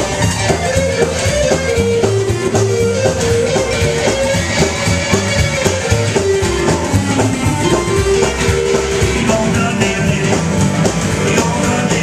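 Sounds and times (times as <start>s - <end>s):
electric guitar: 0.0s - 12.0s
upright bass: 0.0s - 12.0s.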